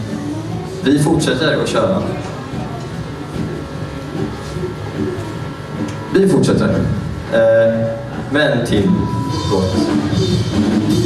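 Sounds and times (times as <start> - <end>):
guitar amplifier hum and buzz: 0.0 - 11.0.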